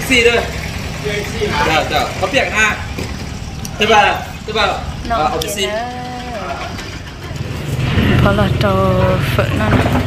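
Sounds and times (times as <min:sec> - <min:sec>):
low engine-like rumble: 0:00.0 - 0:10.0.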